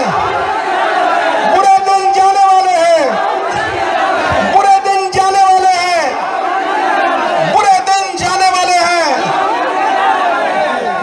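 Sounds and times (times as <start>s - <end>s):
man talking into a microphone: 1.4s - 3.2s, 4.3s - 6.3s, 7.4s - 9.4s.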